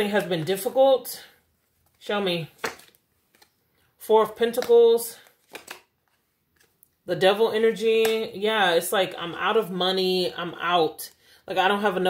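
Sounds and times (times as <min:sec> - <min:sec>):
card snaps: 0:02.6 - 0:03.5, 0:05.3 - 0:05.9.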